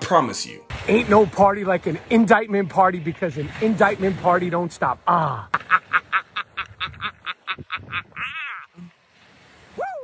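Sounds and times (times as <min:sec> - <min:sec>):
man laughing hard: 0:05.4 - 0:08.8.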